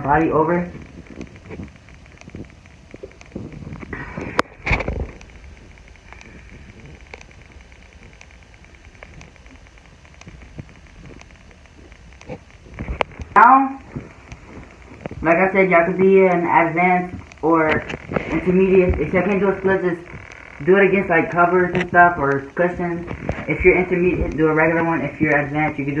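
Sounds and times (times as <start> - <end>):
faint steady background noise: 0.0 - 26.0.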